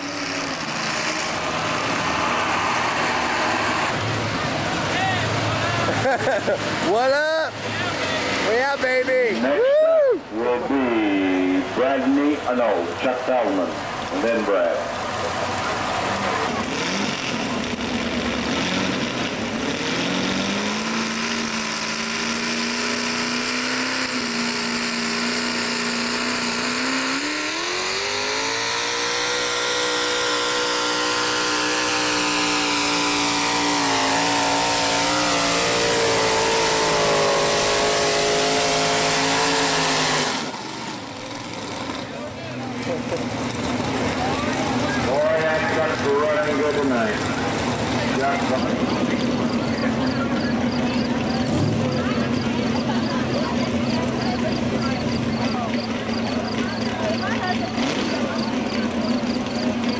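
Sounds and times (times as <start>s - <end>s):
truck engine running hard: 0.0s - 59.9s.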